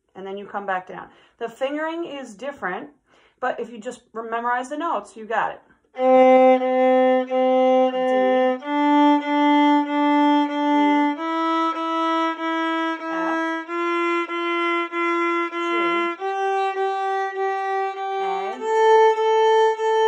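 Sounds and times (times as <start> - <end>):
violin playing a slow scale: 5.9 - 20.0.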